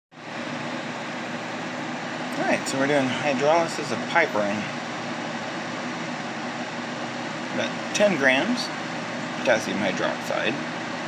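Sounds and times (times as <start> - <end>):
fan whooshing: 0.2 - 11.0.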